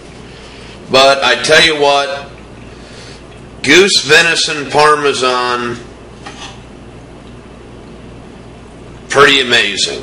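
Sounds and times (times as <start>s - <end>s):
steady low hum: 0.0s - 10.0s
knife and fork on ceramic plate: 6.2s - 6.6s.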